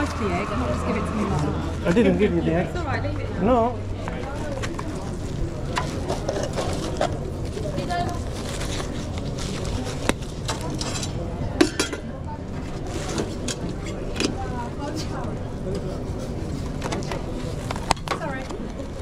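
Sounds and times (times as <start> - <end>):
steady low hum: 0.0 - 11.5
faint chatter: 0.0 - 19.0.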